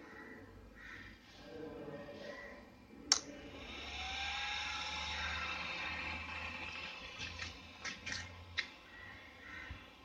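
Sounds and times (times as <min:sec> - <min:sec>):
cooling fan whirring: 0:02.6 - 0:10.0.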